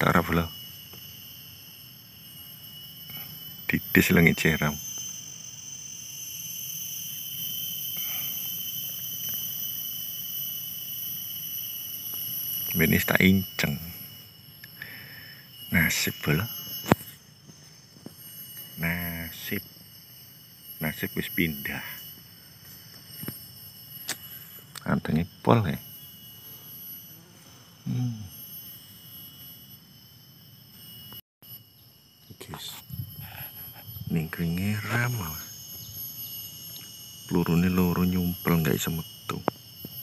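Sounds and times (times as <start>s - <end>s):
insects chorus: 0.0s - 40.0s.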